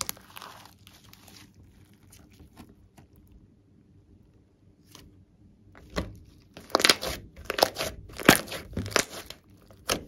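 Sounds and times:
slime crackling and popping: 0.0 - 1.4, 6.6 - 10.0.

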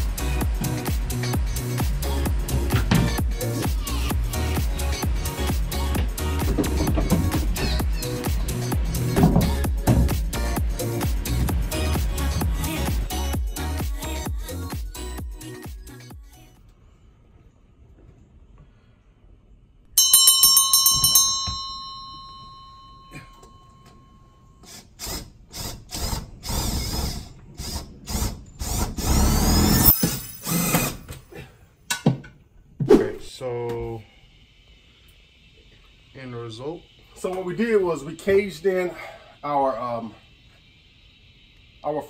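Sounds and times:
cordless drill driving screws: 24.6 - 31.2.

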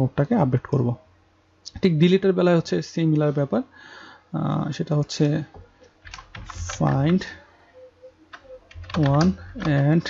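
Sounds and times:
keyboard typing: 5.6 - 7.4, 8.2 - 10.0.

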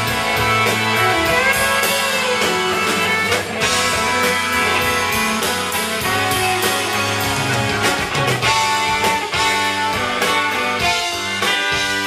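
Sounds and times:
bass: 0.0 - 12.0
drums: 0.0 - 12.0
electric guitar: 0.0 - 12.0
keyboards: 0.0 - 12.0
saxophone: 0.1 - 12.0
trumpet: 0.2 - 7.5.

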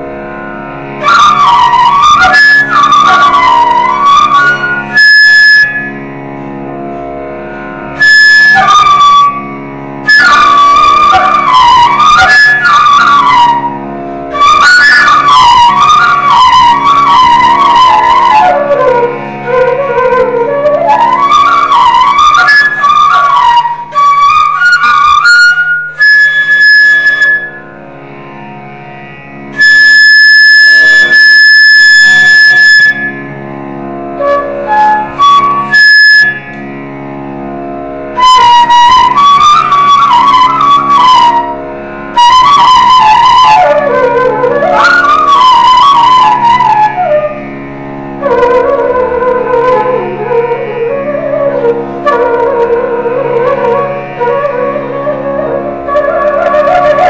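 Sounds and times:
flute melody: 0.0 - 6.2, 6.9 - 28.2, 29.5 - 37.0, 38.1 - 57.0.

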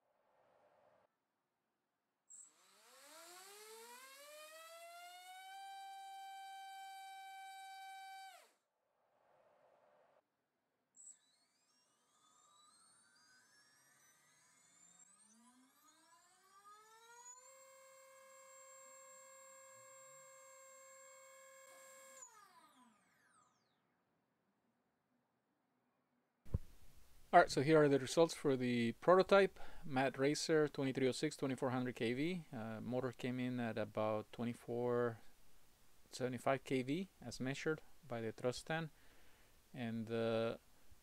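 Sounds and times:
electric motor whine: 2.4 - 8.6, 15.2 - 23.6.

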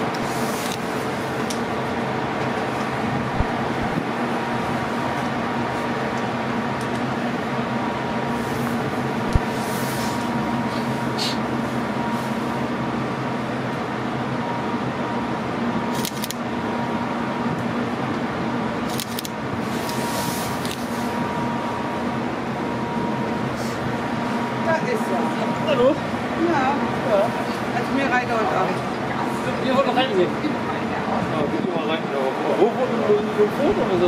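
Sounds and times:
ship machinery hum: 0.0 - 34.0.

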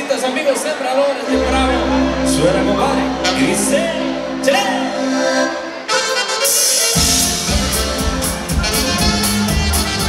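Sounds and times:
live band with accordion: 0.0 - 10.0
bass and drum beat: 7.0 - 10.0.

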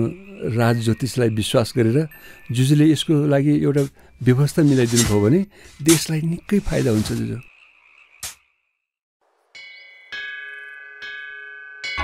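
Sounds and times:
bell-like chimes ringing: 9.5 - 12.0.

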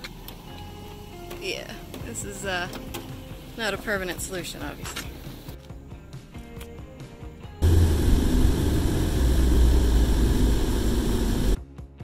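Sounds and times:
soft background music: 0.0 - 8.3
deep rumbling noise: 7.6 - 11.6.

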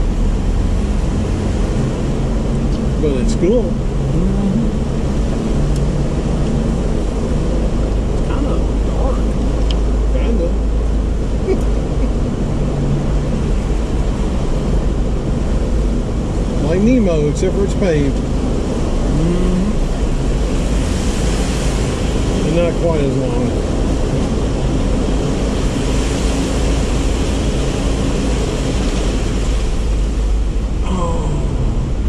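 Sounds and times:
vehicle engine drone: 0.0 - 32.0.

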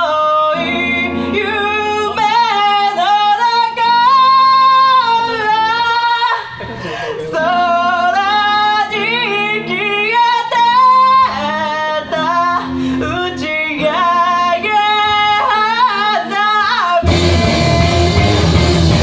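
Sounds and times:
woman singing: 0.0 - 18.6
live rock band: 0.0 - 19.0.

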